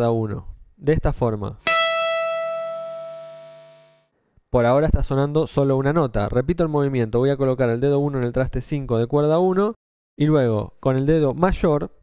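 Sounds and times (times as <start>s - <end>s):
electric guitar note ringing: 1.6s - 4.1s.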